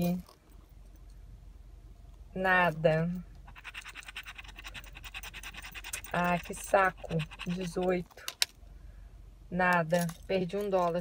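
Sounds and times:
key scraping scratch-off ticket: 3.4s - 8.4s.

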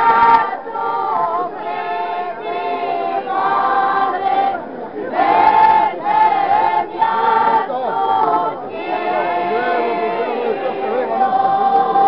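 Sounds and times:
group singing unaccompanied: 0.0s - 12.0s.

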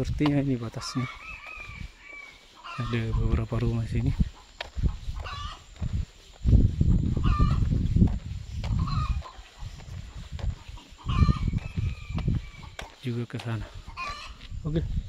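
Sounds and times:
rooster crowing: 0.9s - 3.0s.

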